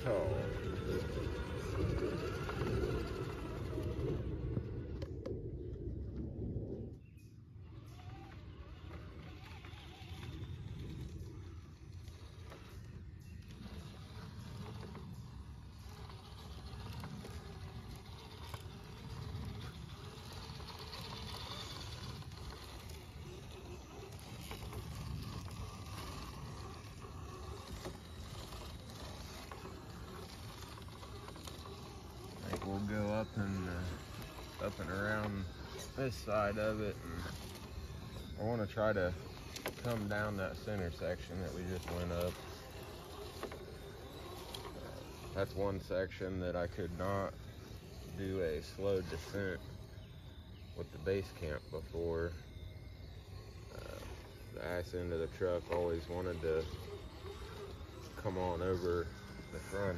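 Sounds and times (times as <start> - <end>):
rc truck drivetrain and tyre noise: 0.0 - 59.9.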